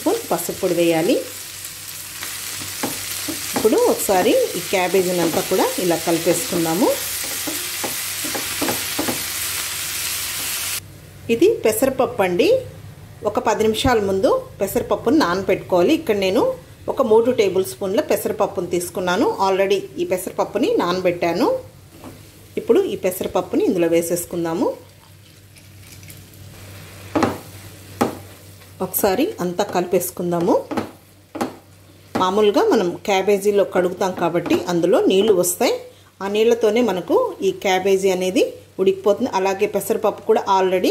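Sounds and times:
cabbage sizzling in a frying pan: 0.0s - 10.8s, 25.4s - 29.6s.

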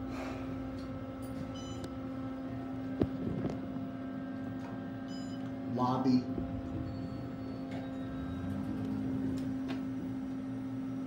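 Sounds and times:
elevator low hum: 0.0s - 11.0s.

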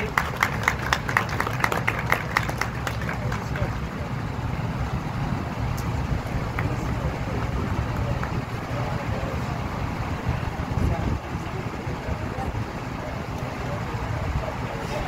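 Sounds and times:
small group clapping: 0.0s - 3.9s, 6.5s - 6.9s, 7.9s - 8.8s
faint crowd chatter: 0.0s - 15.0s
low outdoor rumble: 0.0s - 15.0s.

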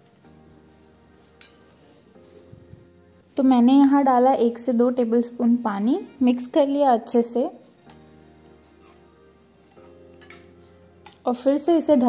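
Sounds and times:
soft background music: 0.0s - 12.0s
spoon clinking against wok: 1.4s - 1.7s, 9.7s - 11.2s.

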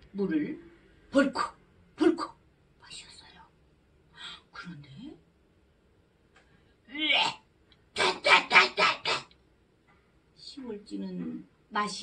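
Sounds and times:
woman imitating retching: 8.0s - 9.3s.

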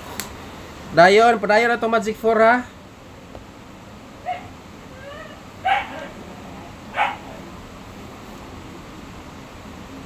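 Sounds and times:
high-pitched animal calls: 4.2s - 7.5s.

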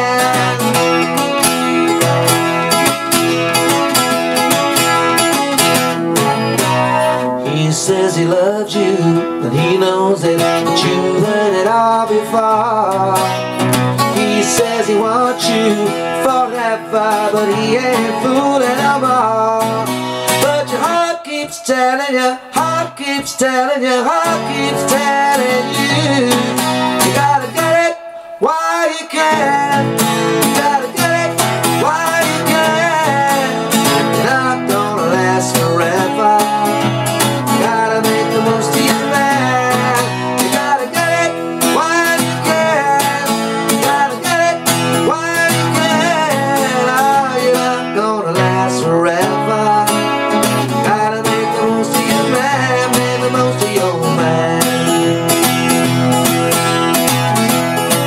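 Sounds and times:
acoustic guitar rock and roll: 0.0s - 58.0s.

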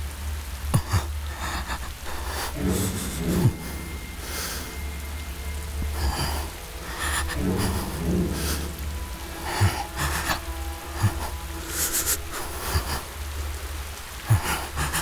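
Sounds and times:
rain-like hiss: 0.0s - 15.0s
slow background music: 0.0s - 15.0s
low rumble: 0.1s - 15.0s.

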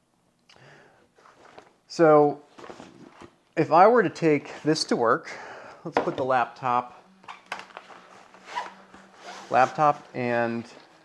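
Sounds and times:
fabric rustling and scraping: 7.6s - 11.0s.

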